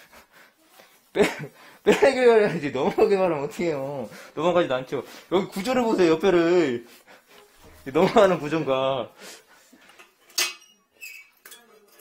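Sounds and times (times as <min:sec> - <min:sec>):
hard tools clinking and knocking: 0:09.9 - 0:12.0.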